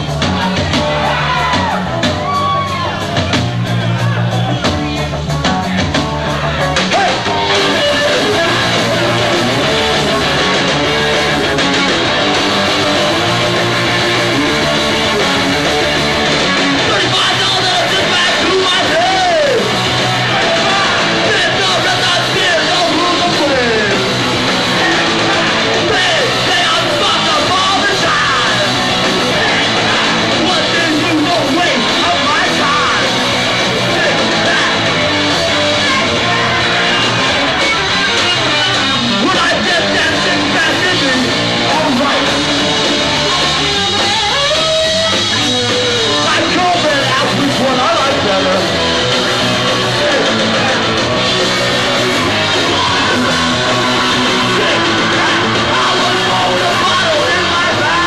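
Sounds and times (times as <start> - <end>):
distorted electric guitar: 0.0 - 58.0
punk band playing live: 0.0 - 58.0
shouted vocals: 0.0 - 58.0.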